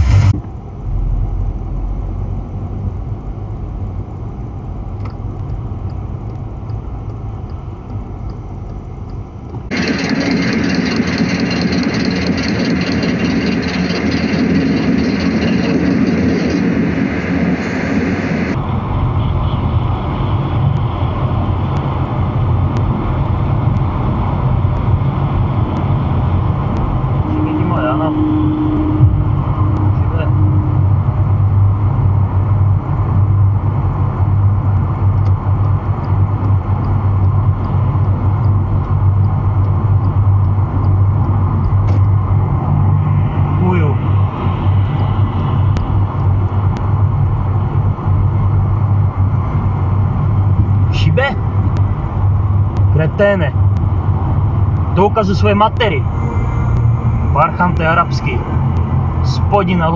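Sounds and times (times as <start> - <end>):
loud full sound: 0.0 - 3.5
car tyres and engine rumble: 0.0 - 59.9.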